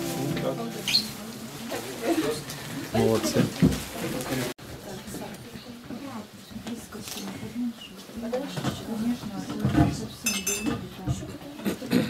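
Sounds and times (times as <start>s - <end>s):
high clinking ring: 10.3s - 10.7s.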